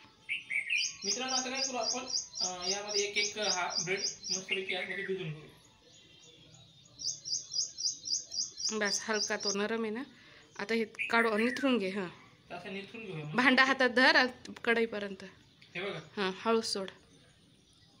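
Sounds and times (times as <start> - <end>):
small bird chirping rapidly: 0.0 - 18.0.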